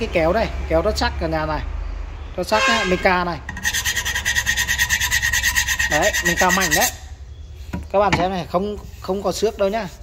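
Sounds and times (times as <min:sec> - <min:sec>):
scissor blade scraping stone: 0:03.6 - 0:07.1.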